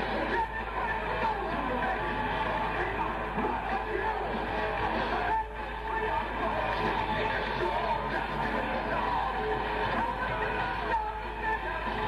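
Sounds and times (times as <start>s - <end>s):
heavy metal band playing live: 0.0s - 12.0s.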